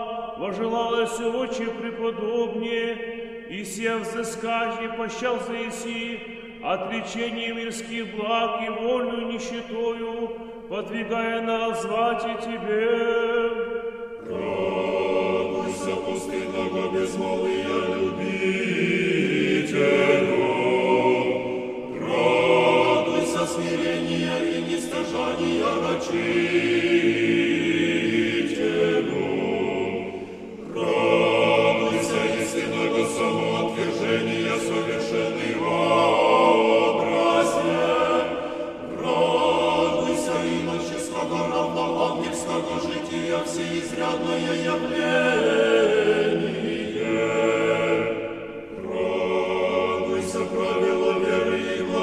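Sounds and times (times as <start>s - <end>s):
unaccompanied choir singing hymn: 0.0s - 8.3s, 11.7s - 52.0s.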